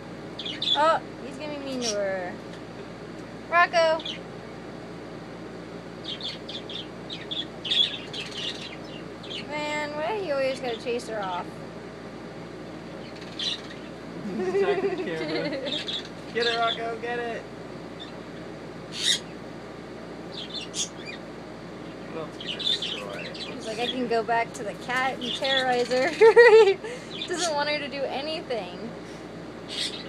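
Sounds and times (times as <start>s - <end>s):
bird chirping: 0.4s - 0.9s, 6.0s - 9.5s, 13.0s - 14.0s, 15.7s - 16.8s, 20.3s - 21.2s, 21.8s - 24.1s, 29.7s - 30.0s
toucan harsh calls: 13.0s - 14.0s, 18.9s - 19.4s, 20.3s - 21.2s, 22.4s - 23.8s, 29.7s - 30.0s.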